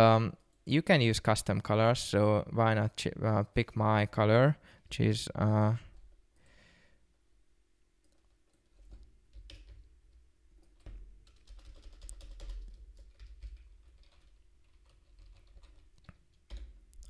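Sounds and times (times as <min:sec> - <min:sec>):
typing on a keyboard: 0:08.1 - 0:09.9, 0:10.6 - 0:17.0.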